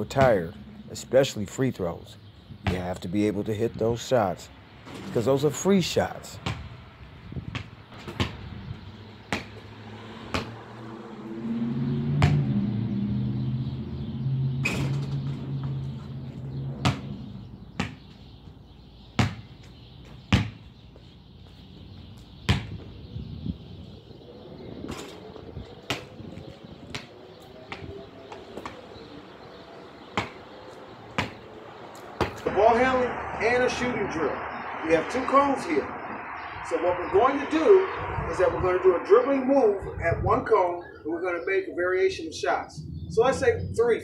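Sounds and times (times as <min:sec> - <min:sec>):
basketball bouncing on concrete: 0:00.1 - 0:00.5, 0:02.6 - 0:03.0, 0:06.4 - 0:06.7, 0:07.4 - 0:08.5, 0:09.2 - 0:10.6, 0:12.2 - 0:12.5, 0:16.8 - 0:18.2, 0:19.1 - 0:20.8, 0:22.5 - 0:22.9, 0:25.8 - 0:29.0, 0:30.1 - 0:31.4, 0:32.2 - 0:32.5.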